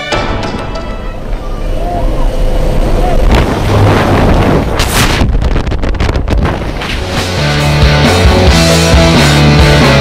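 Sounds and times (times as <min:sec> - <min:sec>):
wind buffeting microphone: 0:02.8 - 0:06.8.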